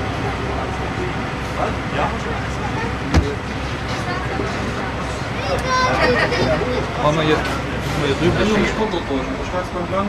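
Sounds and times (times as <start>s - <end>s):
tram wheels and motors rumbling: 0.0s - 10.0s.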